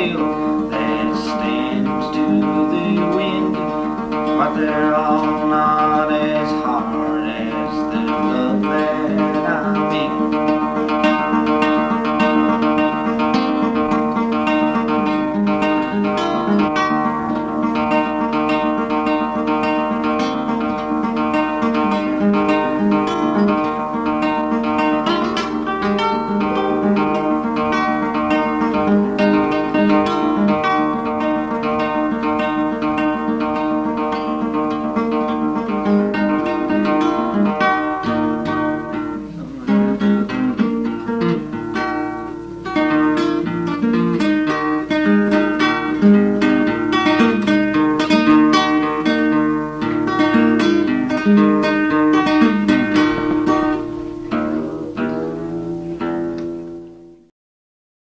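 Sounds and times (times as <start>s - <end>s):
acoustic guitar strummed and picked: 0.0s - 57.3s.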